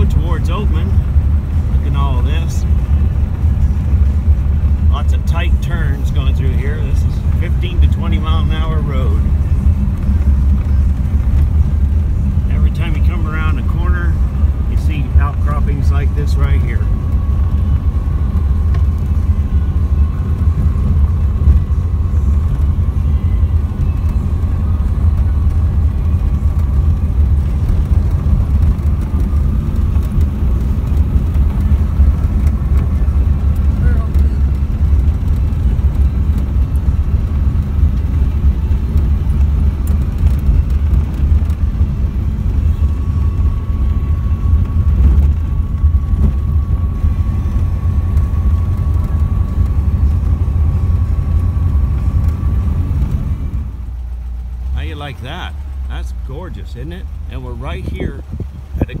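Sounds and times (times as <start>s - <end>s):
car engine rumbling: 0.0s - 59.0s
road noise: 0.0s - 59.0s.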